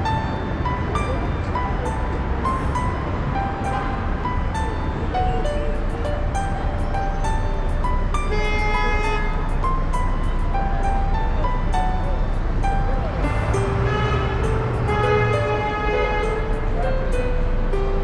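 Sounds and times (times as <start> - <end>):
christmas music: 0.0 - 18.0
street noise: 0.0 - 18.0.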